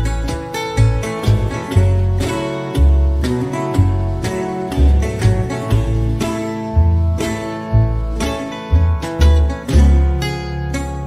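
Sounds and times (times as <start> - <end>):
country acoustic guitar picking: 0.0 - 11.0.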